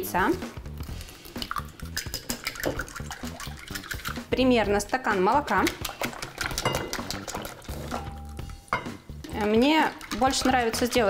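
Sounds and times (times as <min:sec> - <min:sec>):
utensil clicking against bowl: 0:01.4 - 0:04.1.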